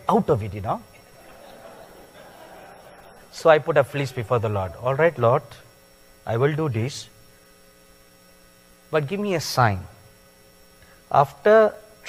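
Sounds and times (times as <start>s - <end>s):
man speaking: 0.0s - 0.9s, 3.3s - 5.6s, 6.3s - 7.1s, 8.9s - 10.0s, 11.1s - 11.8s
faint electrical hum: 0.0s - 12.0s.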